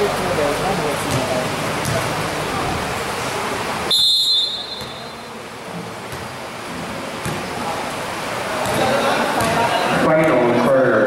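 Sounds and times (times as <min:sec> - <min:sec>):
murmur of crowd voices: 0:00.0 - 0:11.0
referee's whistle blast: 0:03.9 - 0:05.3.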